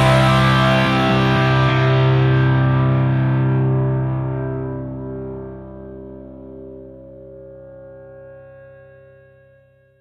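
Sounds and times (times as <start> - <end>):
distorted electric guitar chord: 0.0 - 8.6.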